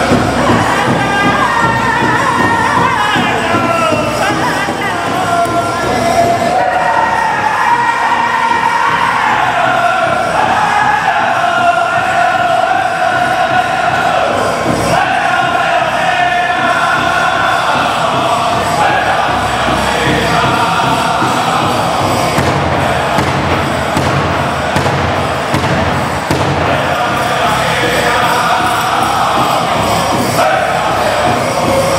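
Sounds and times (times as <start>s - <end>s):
chanted singing voices: 0.0s - 31.9s
large drum beats: 0.0s - 31.9s.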